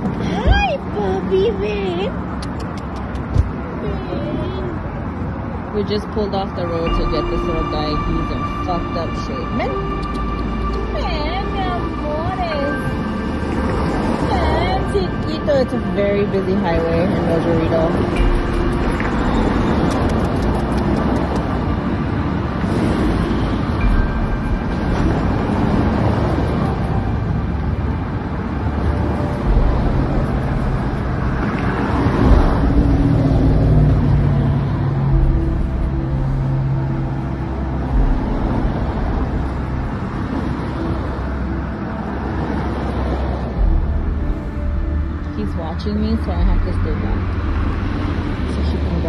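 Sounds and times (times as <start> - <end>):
highway traffic rumble: 0.0 - 49.0.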